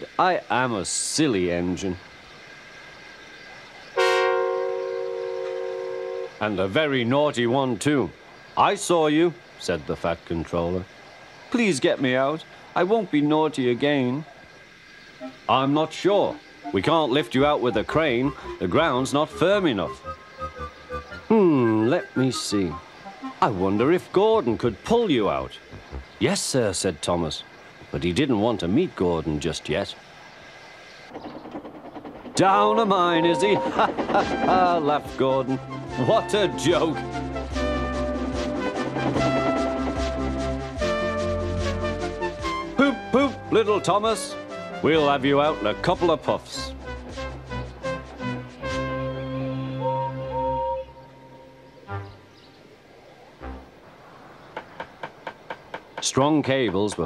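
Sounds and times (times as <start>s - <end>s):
faint steady hiss: 0.0s - 31.1s, 48.4s - 57.0s
steam locomotive running on track: 3.7s - 14.3s, 15.2s - 25.0s, 30.5s - 51.3s
faint held tones: 15.2s - 18.9s
loud whistle-like tone: 17.6s - 23.3s, 32.6s - 33.8s, 48.6s - 52.0s.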